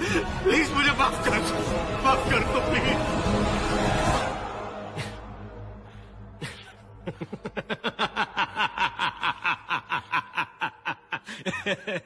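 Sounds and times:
man laughing: 0:06.4 - 0:12.0.

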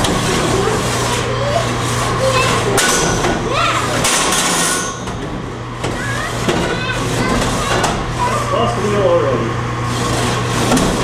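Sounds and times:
grinding: 0:00.0 - 0:09.2, 0:09.8 - 0:11.0.

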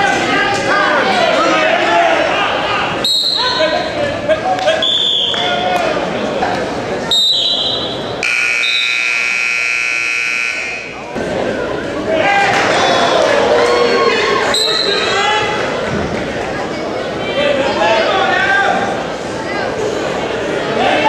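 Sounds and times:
spectators and coaches shouting: 0:00.0 - 0:04.2, 0:10.4 - 0:15.8
referee's whistle blasts: 0:03.0 - 0:03.6, 0:04.8 - 0:05.5, 0:07.1 - 0:11.0
scoreboard buzzer: 0:08.2 - 0:11.1.

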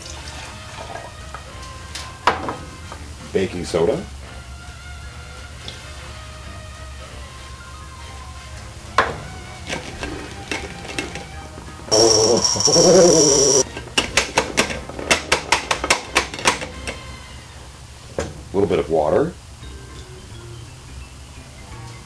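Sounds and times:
electric massager buzzing: 0:11.9 - 0:13.7.

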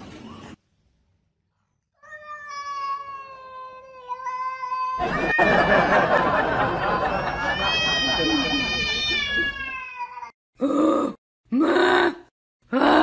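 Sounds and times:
person laughing: 0:05.0 - 0:09.7
cat meowing: 0:07.4 - 0:10.3.

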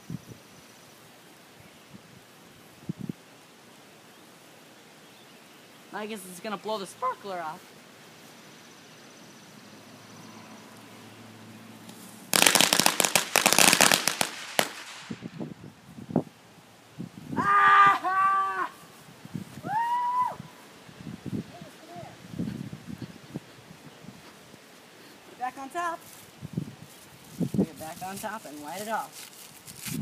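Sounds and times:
firecrackers rapid cracks: 0:11.9 - 0:15.4.

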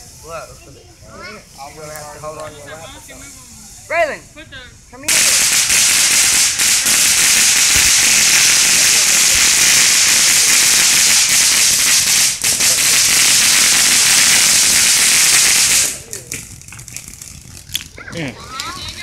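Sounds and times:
firework fountain hissing: 0:00.0 - 0:19.0.

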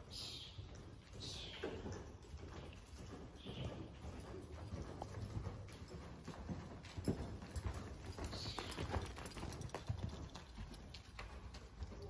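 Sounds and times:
horse hooves thudding on dirt: 0:00.0 - 0:12.0.

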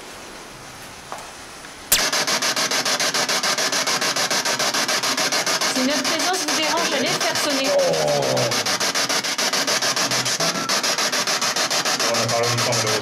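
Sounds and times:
chopped radio static: 0:01.9 - 0:13.0.

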